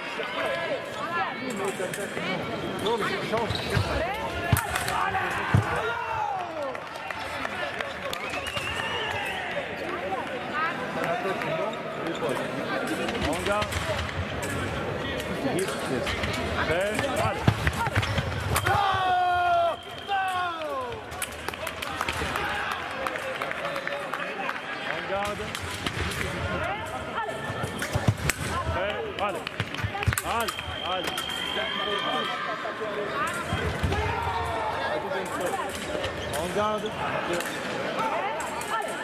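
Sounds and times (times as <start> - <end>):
voices in a hall: 0.0 - 39.0
loud shout: 18.6 - 21.1.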